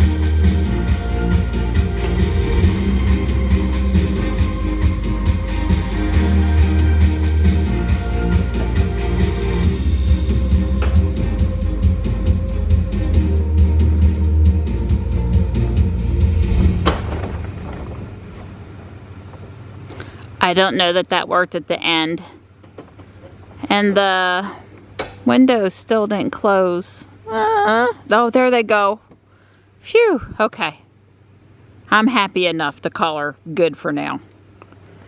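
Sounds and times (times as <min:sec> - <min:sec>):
music with heavy bass beat: 0:00.0 - 0:17.0.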